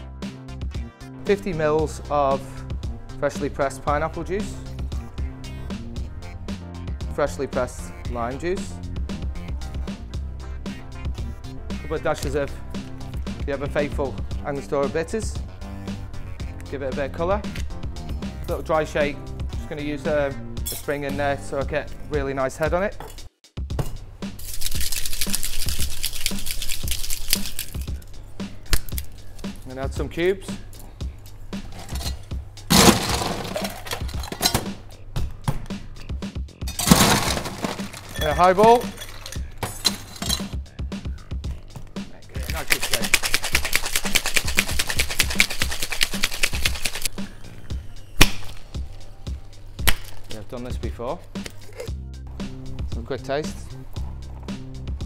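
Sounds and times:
background music with low beat: 0.0 - 24.5, 25.2 - 55.0
cocktail shaker sloshing and rattling: 24.4 - 28.0, 31.8 - 34.5, 36.8 - 40.5, 42.4 - 47.1.

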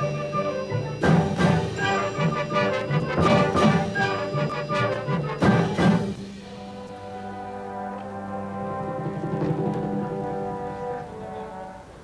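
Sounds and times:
brass section sustained chord: 0.0 - 12.0.

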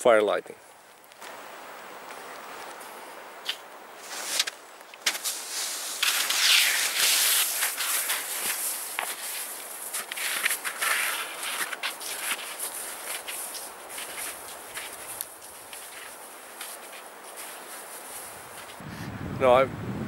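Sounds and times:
faint steady hiss: 0.0 - 20.0
skis crunching over snow: 2.1 - 18.8
ski poles planting: 3.4 - 18.8.

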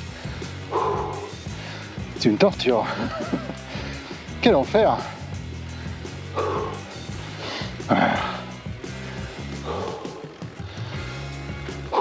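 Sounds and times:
background music with low notes: 0.0 - 12.0
breathy groan: 0.2 - 2.0, 5.8 - 11.2.

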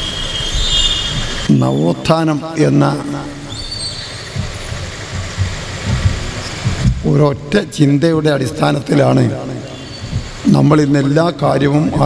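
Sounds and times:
low rumble and hiss: 1.0 - 12.0.

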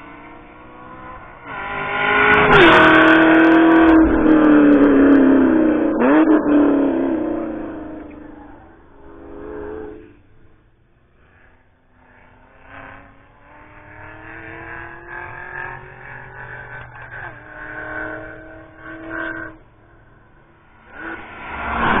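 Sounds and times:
race car engine passing by: 11.3 - 22.0.

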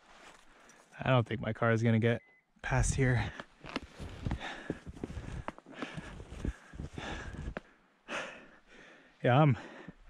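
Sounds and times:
footsteps crunching through snow: 0.0 - 0.7, 3.5 - 7.6.

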